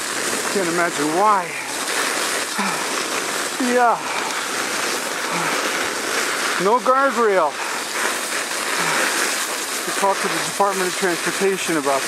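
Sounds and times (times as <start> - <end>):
sled sliding over snow: 0.0 - 12.0.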